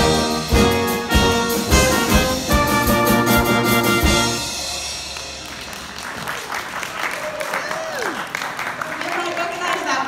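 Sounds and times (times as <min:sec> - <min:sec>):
brass band chord: 0:00.0 - 0:05.4
audience applause: 0:05.2 - 0:10.0.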